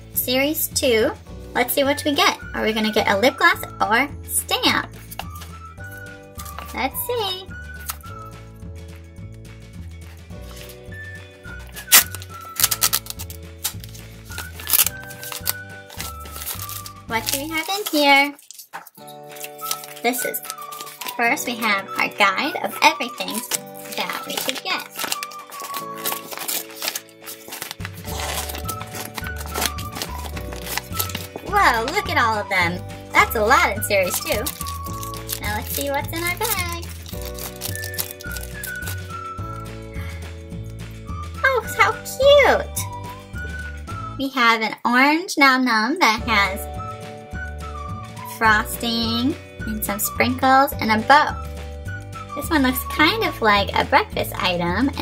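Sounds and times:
upbeat background music: 0.0 - 45.0, 45.9 - 55.0
plastic lid peeling and crinkling: 11.6 - 21.4, 22.6 - 32.2, 33.2 - 39.2.

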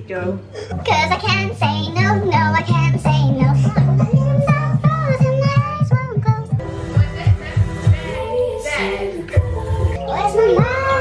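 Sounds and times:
pop song with pulsing bass beat: 0.7 - 11.0
woman singing along: 0.8 - 11.0.

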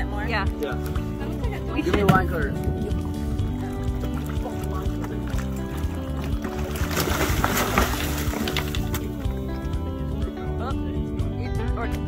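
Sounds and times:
music with steady beat: 0.1 - 6.8
water splashing: 1.2 - 9.5.

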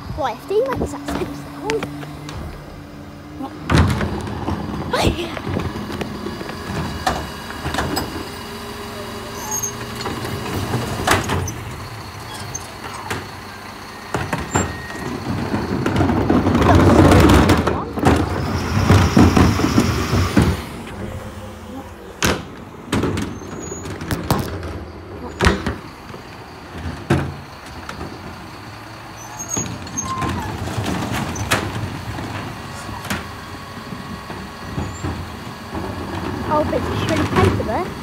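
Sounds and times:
garbage truck machine noise: 0.0 - 38.0
low engine hum: 0.0 - 38.0
sharp knocks and clanks: 0.6 - 3.0, 3.6 - 8.3.

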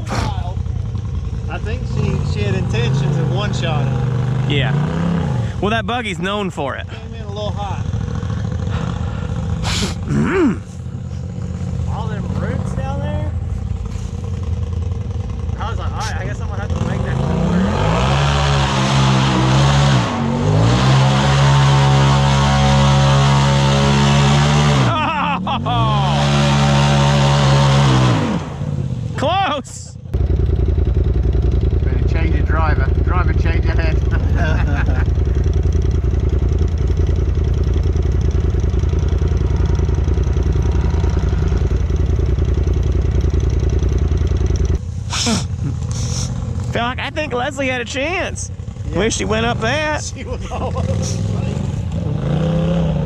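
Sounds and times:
engine revving hard: 1.6 - 5.7, 16.0 - 29.0, 48.7 - 53.0.

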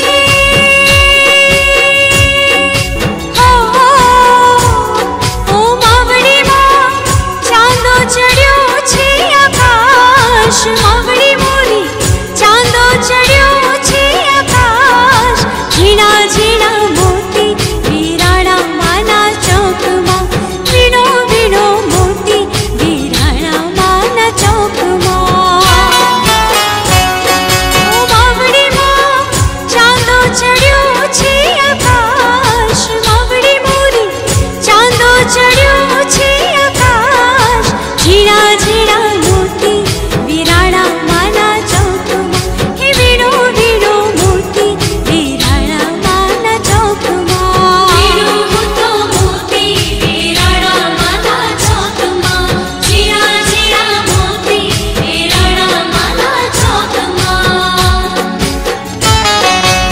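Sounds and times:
woman singing: 0.0 - 59.5
steady drum beat: 0.0 - 59.9
backing instruments: 36.1 - 59.9.

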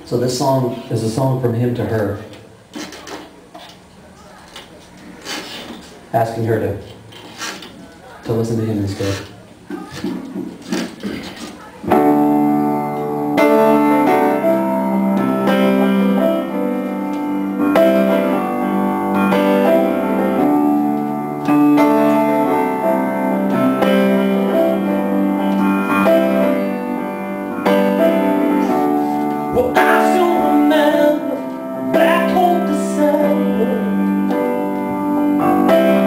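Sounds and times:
piano chords: 11.7 - 36.0.

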